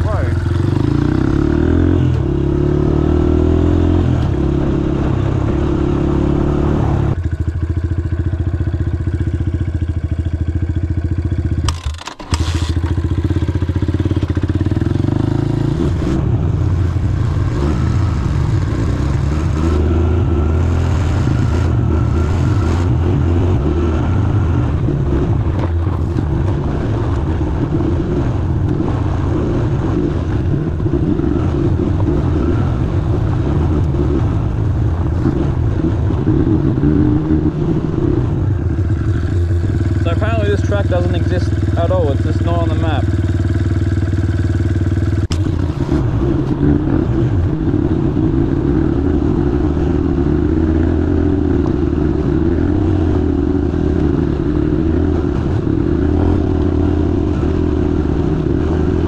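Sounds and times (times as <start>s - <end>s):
motorbike engine revving: 0.0s - 59.0s.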